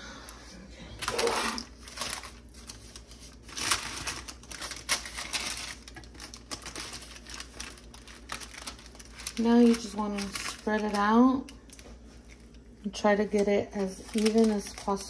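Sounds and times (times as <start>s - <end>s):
paper crinkling and rustling: 1.0s - 15.0s.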